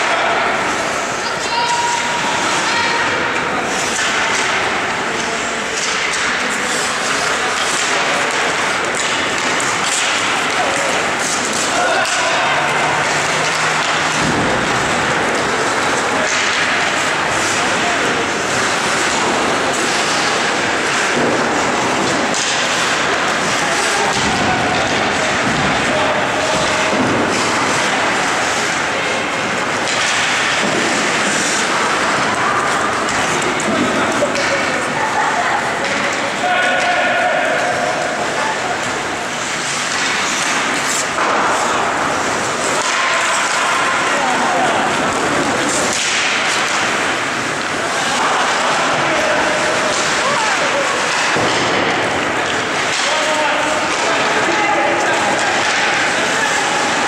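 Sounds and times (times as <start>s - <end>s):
people shouting and talking: 0.0s - 57.0s
pucks and sticks hitting boards: 0.0s - 57.0s
skates scraping ice: 0.0s - 57.0s.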